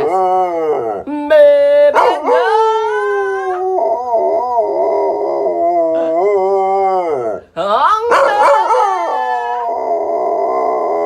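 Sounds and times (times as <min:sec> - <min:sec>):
dog howling: 0:00.0 - 0:01.1, 0:02.0 - 0:11.0.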